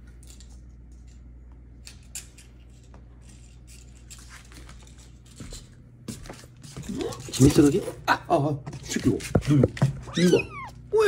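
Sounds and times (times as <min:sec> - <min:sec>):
low steady hum: 0:00.0 - 0:11.0
kittens scratching on hard floor: 0:02.2 - 0:08.1, 0:08.7 - 0:10.8.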